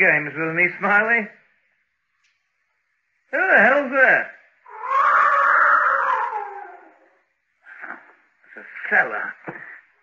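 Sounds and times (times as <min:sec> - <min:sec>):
cat yowling: 0:04.6 - 0:07.1.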